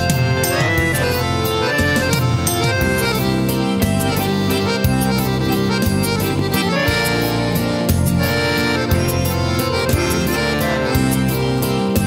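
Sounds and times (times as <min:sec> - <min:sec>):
electronic keyboard with bass: 0:00.0 - 0:12.0
piano accordion melody: 0:00.0 - 0:12.0.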